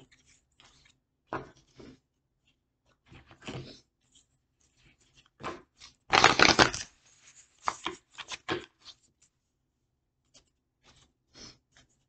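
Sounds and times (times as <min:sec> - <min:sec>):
cards being shuffled: 0:05.8 - 0:09.0.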